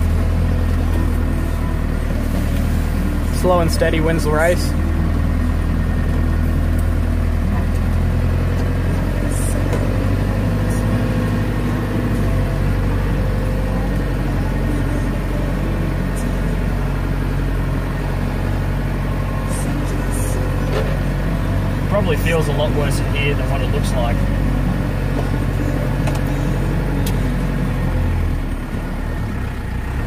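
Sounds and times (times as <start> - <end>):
vehicle engine low drone: 0.0 - 30.0.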